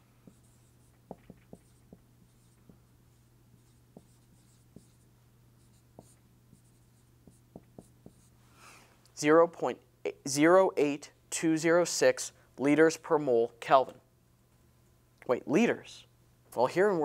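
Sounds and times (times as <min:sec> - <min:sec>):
marker tapping on whiteboard: 0:00.2 - 0:02.8, 0:03.6 - 0:05.0, 0:05.6 - 0:08.3
marker squeaking on whiteboard: 0:00.2 - 0:08.3.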